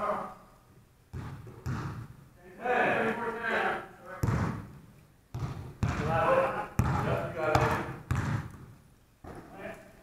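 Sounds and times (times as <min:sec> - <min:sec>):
basketball bouncing on wooden floor: 0:01.1 - 0:02.2, 0:04.2 - 0:06.1, 0:06.8 - 0:09.5.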